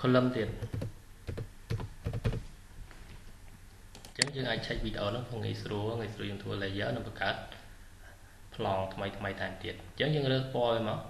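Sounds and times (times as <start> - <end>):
keyboard typing: 0.5 - 2.4.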